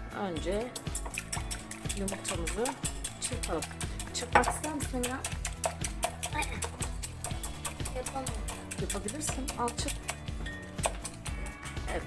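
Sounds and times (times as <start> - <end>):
background music: 0.0 - 12.0
whisk clicking against glass bowl: 0.6 - 11.7.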